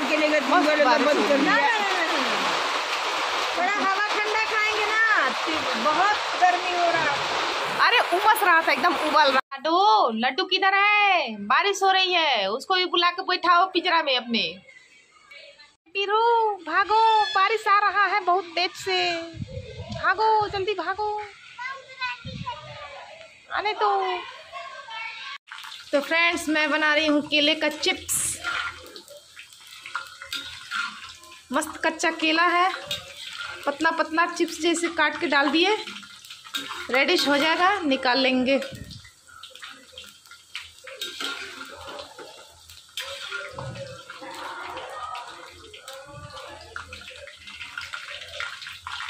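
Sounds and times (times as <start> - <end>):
rain falling: 0.0 - 9.4, 16.6 - 49.0
slices sizzling in hot oil: 0.0 - 9.4, 20.0 - 24.4, 25.3 - 49.0
child calling: 21.5 - 23.0.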